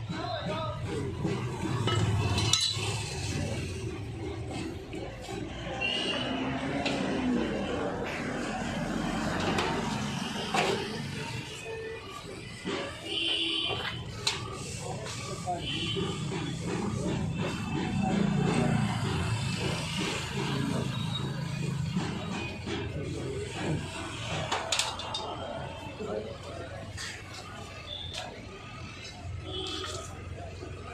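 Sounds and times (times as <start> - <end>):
people talking: 0.0 - 30.9
road traffic noise: 0.0 - 30.9.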